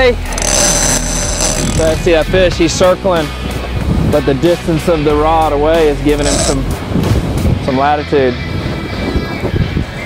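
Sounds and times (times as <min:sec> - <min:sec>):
outboard motors running: 0:00.0 - 0:02.5, 0:05.9 - 0:06.9
wind: 0:00.0 - 0:10.0
thin high whine: 0:00.3 - 0:02.0, 0:06.2 - 0:06.6.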